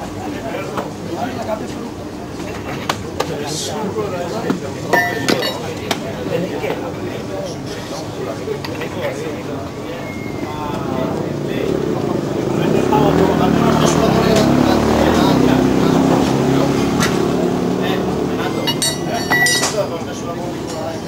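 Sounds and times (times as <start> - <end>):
people talking: 0.0 - 21.0
motorcycle engine running: 10.9 - 19.4.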